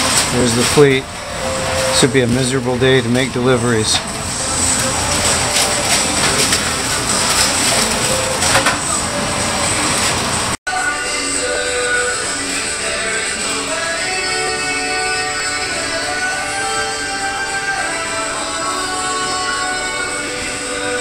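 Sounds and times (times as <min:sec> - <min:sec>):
background guitar music: 0:00.0 - 0:21.0
steady background noise: 0:00.0 - 0:21.0.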